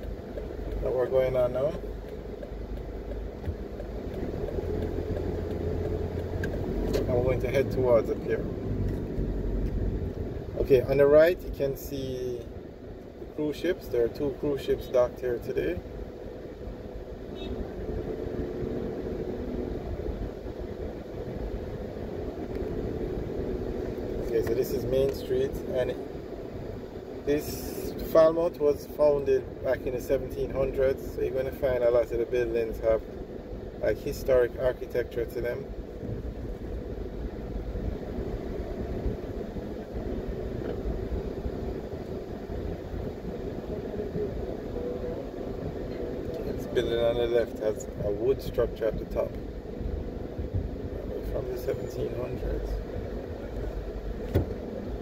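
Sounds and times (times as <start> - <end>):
car engine and tyres rumbling: 0.0 - 55.0
faint steady hum: 0.0 - 55.0.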